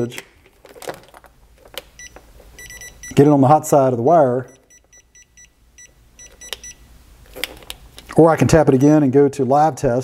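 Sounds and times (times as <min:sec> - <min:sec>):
rapid high beeps: 0:02.0 - 0:03.2, 0:04.5 - 0:06.9.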